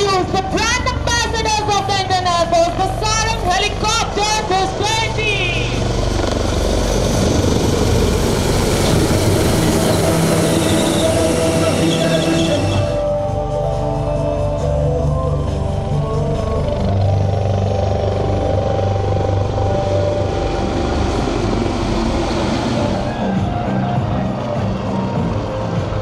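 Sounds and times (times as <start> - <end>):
helicopter rotor and engine rumble: 0.0 - 26.0.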